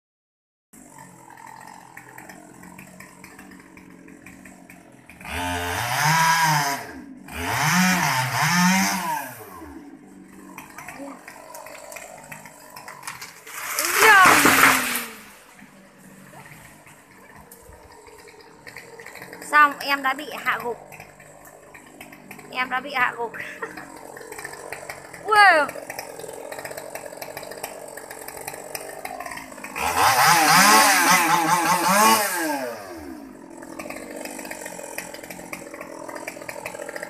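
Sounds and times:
chainsaw idling and revving: 0.8 - 37.0.

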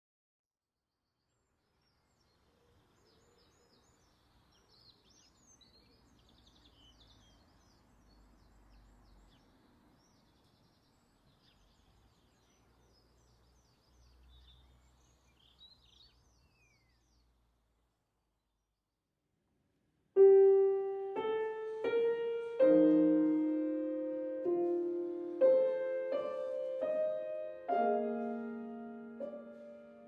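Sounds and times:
small birds chirping and trilling: 1.2 - 17.5.

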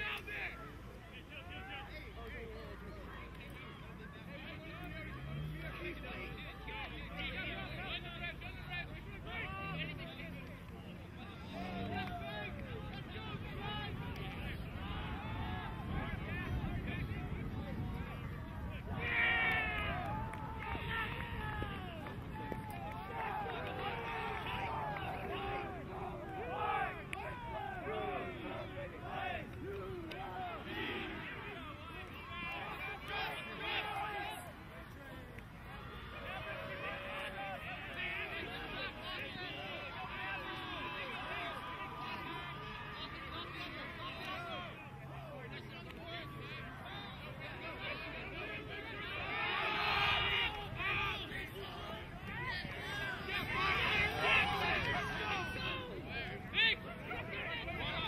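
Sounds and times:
distant voices shouting: 0.0 - 58.0
loud shout: 11.2 - 58.0.

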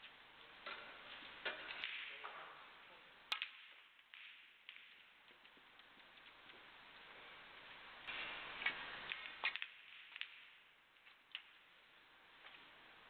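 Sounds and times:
snooker balls clicking: 3.3 - 7.0, 8.6 - 11.6.

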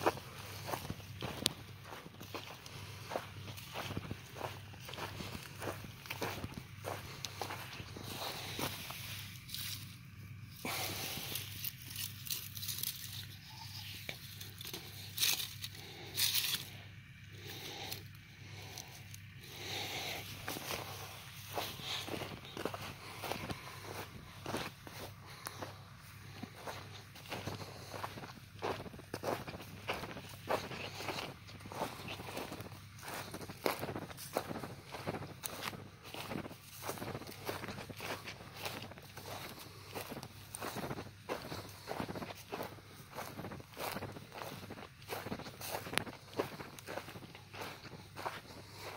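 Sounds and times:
footsteps on dry grass: 0.0 - 48.9
low hum: 0.0 - 48.9.

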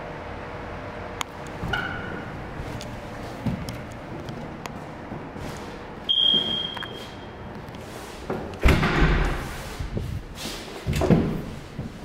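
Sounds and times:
door swinging shut with thump: 8.6 - 9.4.

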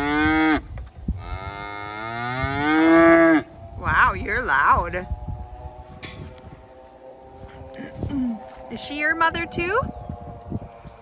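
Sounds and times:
cow mooing: 1.2 - 3.5.

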